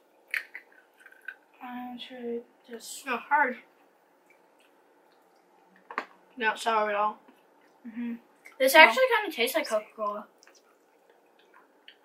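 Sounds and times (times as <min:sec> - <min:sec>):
wet mouth clicks chewing candy: 0:00.3 - 0:01.4.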